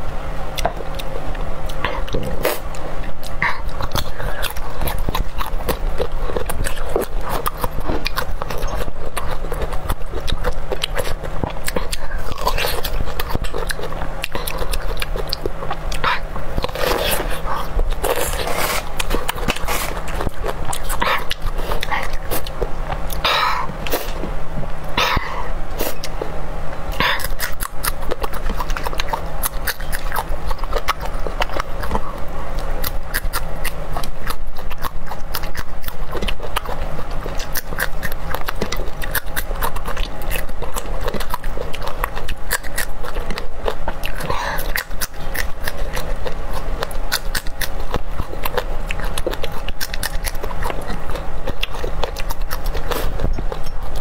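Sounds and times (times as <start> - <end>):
low hum: 0.0 - 54.0
crunchy wet chewing: 0.5 - 54.0.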